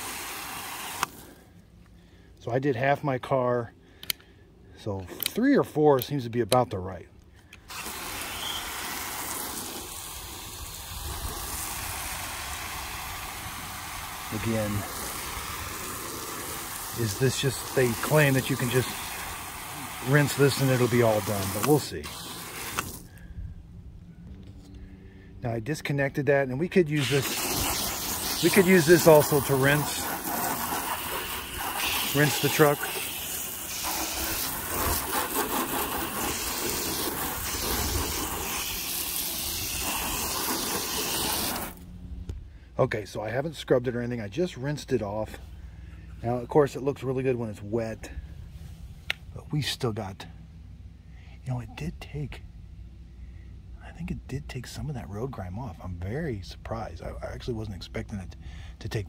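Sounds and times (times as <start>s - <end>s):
hissing spray pattering on metal: 0.0s - 1.4s, 7.7s - 23.1s, 26.9s - 41.8s.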